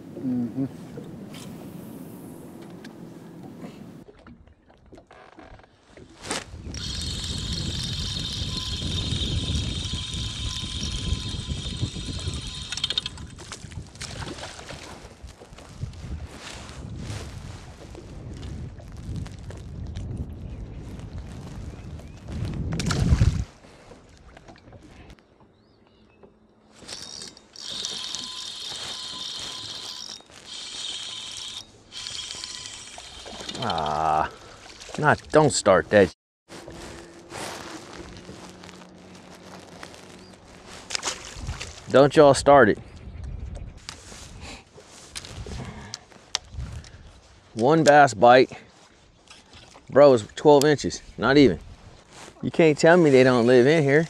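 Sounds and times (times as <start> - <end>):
wind and water noise: 0.0 - 54.0
electric trolling motor whining: 6.7 - 13.1, 26.9 - 33.8.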